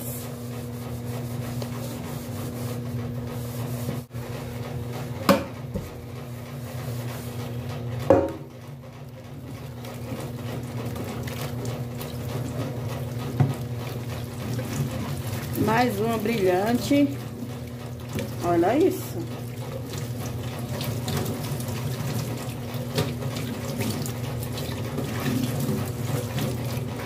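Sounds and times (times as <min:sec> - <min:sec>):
pan knocking against sink: 0:05.3 - 0:05.9, 0:08.0 - 0:08.5
tap water running over a pan: 0:09.0 - 0:27.0.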